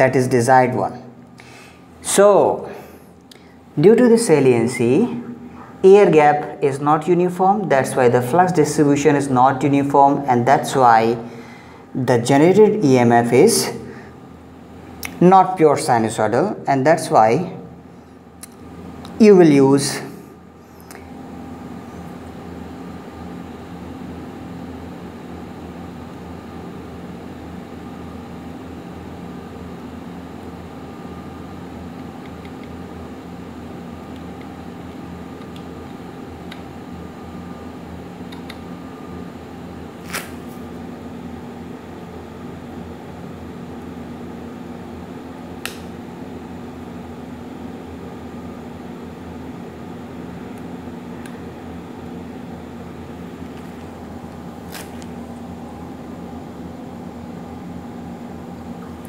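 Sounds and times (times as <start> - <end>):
steady background hum: 0.0 - 59.0.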